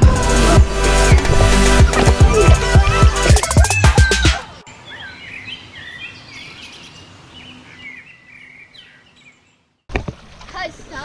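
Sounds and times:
outdoor ambience: 0.0 - 11.0
small birds chirping: 1.9 - 9.9.

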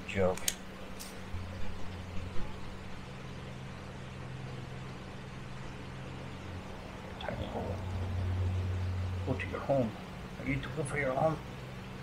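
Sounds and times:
low mechanical hum: 0.0 - 12.0
light clicks: 0.3 - 1.2.

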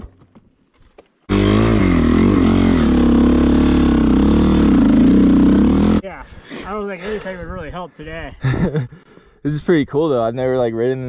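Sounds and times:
dirt bike engine idling: 1.3 - 6.0.

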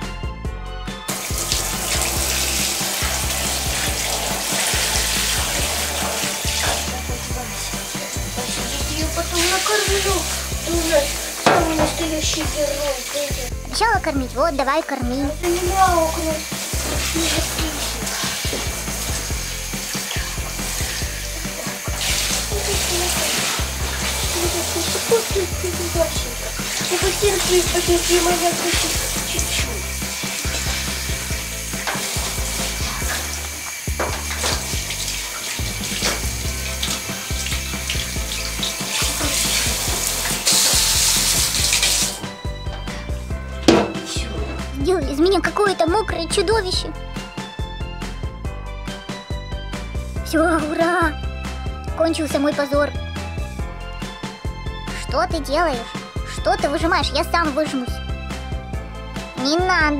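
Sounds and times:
shower spray hissing: 1.1 - 13.6, 15.4 - 45.4.

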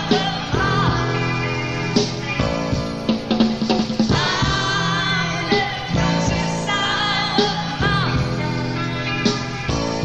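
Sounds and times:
female lead vocal singing: 0.0 - 2.6, 4.1 - 9.2
live rock band: 0.0 - 10.0.

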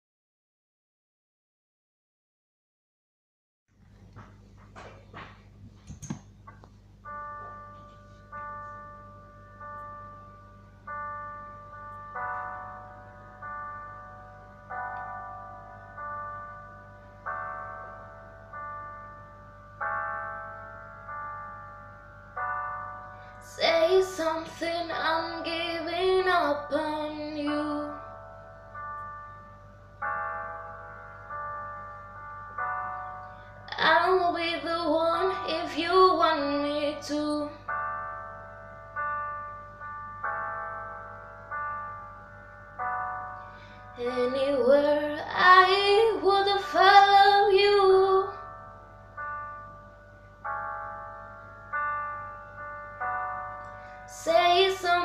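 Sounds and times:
piano block chords: 3.8 - 55.0.

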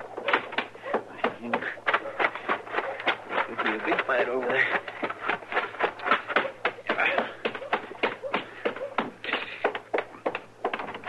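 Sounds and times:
hurried footsteps tapping: 0.0 - 11.0.

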